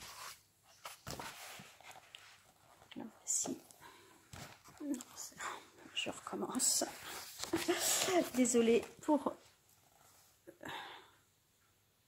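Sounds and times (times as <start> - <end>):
woman whispering: 4.8 - 7.2.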